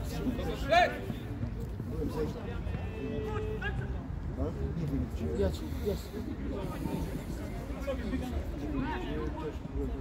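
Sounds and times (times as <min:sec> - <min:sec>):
football players shouting: 0:00.0 - 0:01.4.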